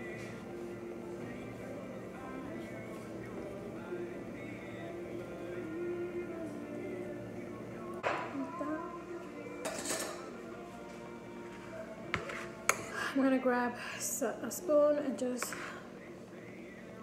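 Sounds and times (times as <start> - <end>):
background music: 0.0 - 17.0
dishes and utensils clinking: 9.6 - 10.4.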